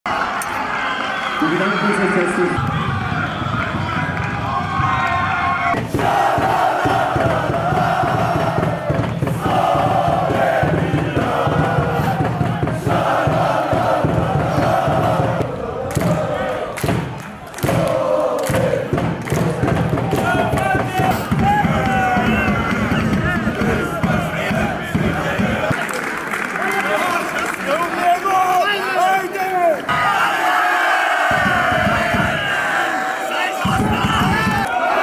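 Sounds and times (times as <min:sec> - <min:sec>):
men chanting in unison: 0:05.8 - 0:16.8, 0:17.6 - 0:25.8
sharp claps: 0:15.9 - 0:28.1.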